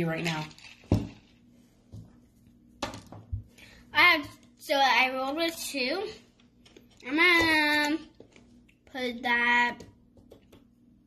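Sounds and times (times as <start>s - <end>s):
child speaking: 3.9s - 6.2s, 7.0s - 8.1s, 8.9s - 9.9s.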